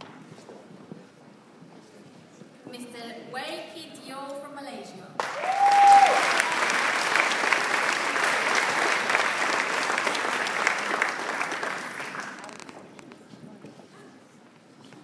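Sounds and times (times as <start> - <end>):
audience applauding: 5.2 - 12.7
short whoop: 5.4 - 6.4.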